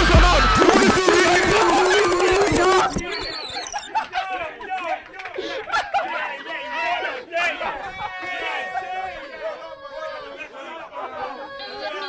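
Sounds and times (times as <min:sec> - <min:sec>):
people chattering and calling out: 0:00.4 - 0:12.0.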